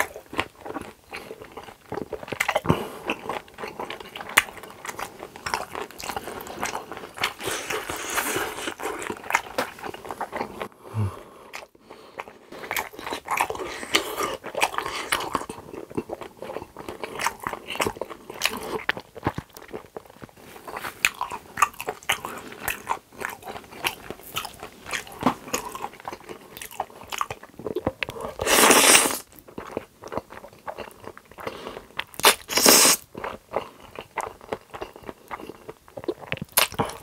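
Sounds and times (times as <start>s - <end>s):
wet chewing mouth sounds: 0.0s - 37.0s.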